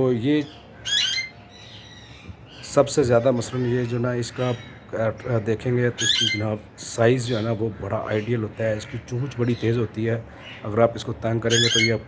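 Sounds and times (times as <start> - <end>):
parakeet squawk: 0.8 - 2.1, 5.9 - 6.4, 11.5 - 12.0.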